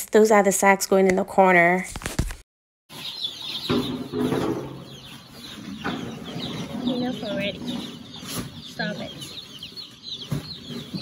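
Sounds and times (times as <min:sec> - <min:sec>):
chicks peeping: 0:02.9 - 0:11.0
knocks: 0:03.6 - 0:05.1.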